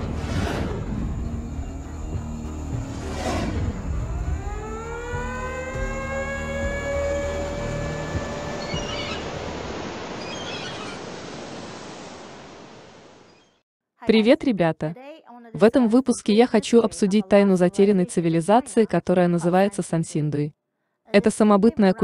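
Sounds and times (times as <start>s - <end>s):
whoosh: 0.0s - 5.1s
low rumble: 0.0s - 9.6s
rising synthesized tone: 0.0s - 9.8s.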